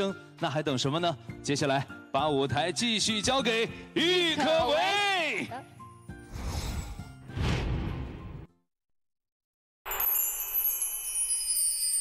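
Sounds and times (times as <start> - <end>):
chime-like shimmer: 9.9 - 12.0.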